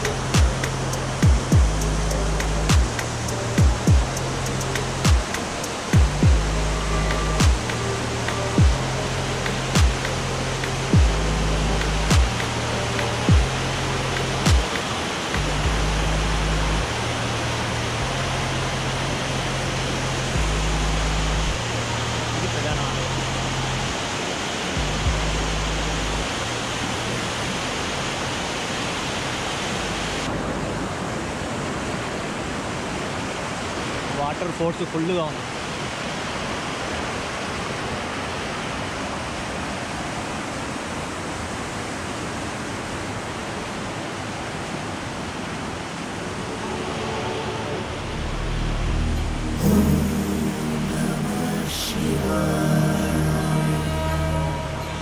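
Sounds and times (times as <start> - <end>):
repeating bass line: 0.0 - 5.3, 6.0 - 14.7, 15.4 - 16.9, 47.8 - 55.0
floodwater rushing over rocks: 0.0 - 55.0
drum beat: 0.4 - 1.9, 2.5 - 3.0, 3.6 - 4.2, 5.0 - 5.4, 6.0 - 6.5, 7.4 - 7.7, 8.6 - 8.8, 9.8 - 10.1, 10.9 - 11.2, 12.1 - 12.5, 13.3 - 13.5, 14.5 - 14.8.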